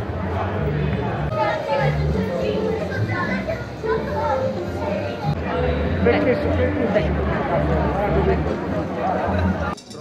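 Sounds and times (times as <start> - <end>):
babble of voices: 0.0 - 10.0.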